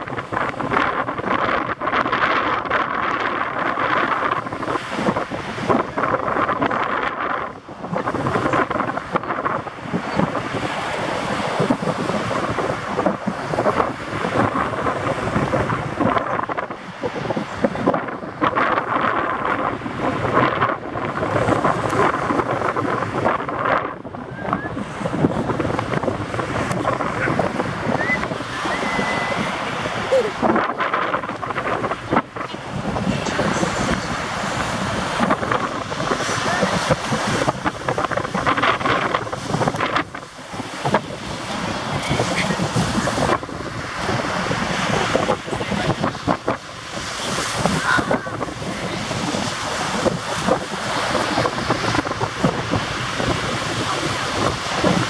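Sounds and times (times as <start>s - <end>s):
surf breaking on shore: 0.0s - 55.0s
wind buffeting microphone: 0.0s - 55.0s.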